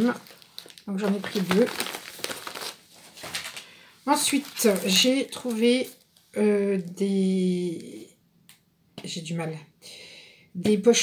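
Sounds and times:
plastic wrapping crinkling: 0.0 - 6.1.

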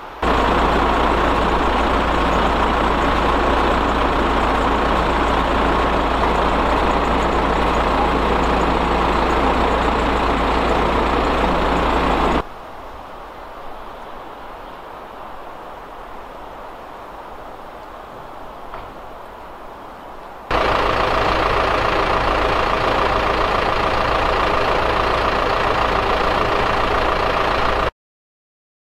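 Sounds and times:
heavy vehicle engine rumbling: 0.0 - 12.5, 20.5 - 27.9.

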